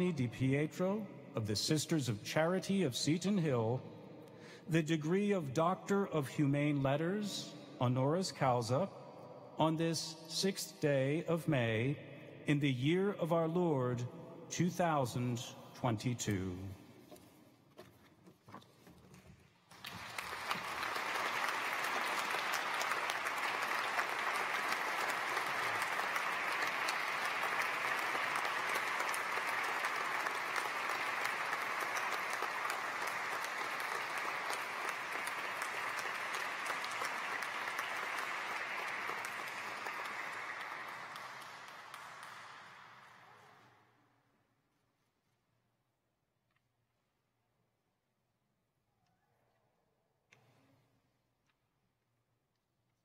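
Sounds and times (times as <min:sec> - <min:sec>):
audience applauding: 0:19.7 - 0:43.4.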